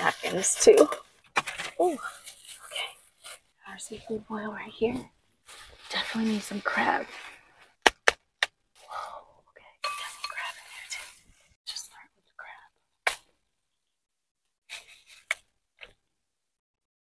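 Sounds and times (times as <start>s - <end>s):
plastic bag rustling and crinkling: 0.0s - 7.6s.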